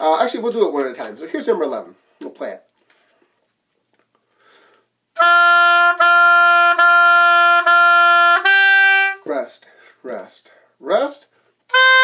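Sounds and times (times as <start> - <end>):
faint breath: 4.2 - 5.0, 9.6 - 11.6
oboe playing notes: 5.2 - 9.3, 11.7 - 12.0.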